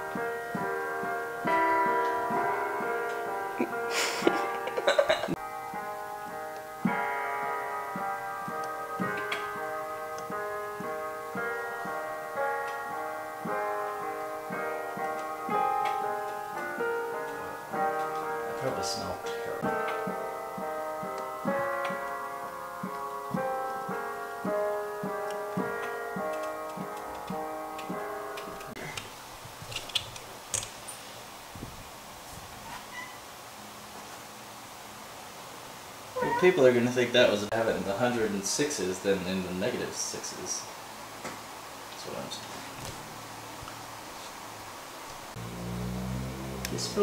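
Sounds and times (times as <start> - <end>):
digital piano chords: 0.0 - 28.9, 36.1 - 47.0.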